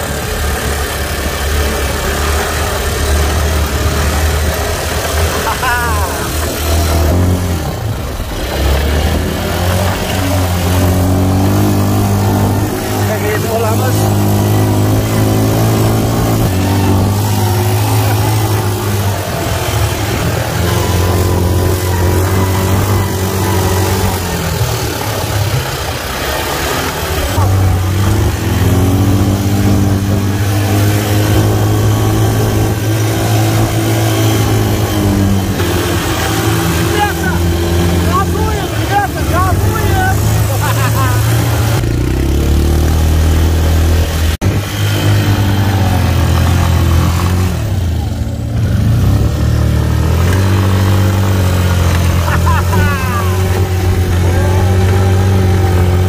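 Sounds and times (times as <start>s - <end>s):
quad bike engine running: 0.0s - 56.0s.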